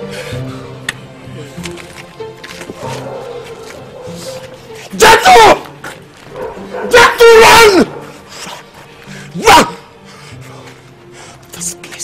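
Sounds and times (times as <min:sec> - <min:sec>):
background music: 0:00.0 - 0:12.0
loud cries: 0:06.9 - 0:08.0.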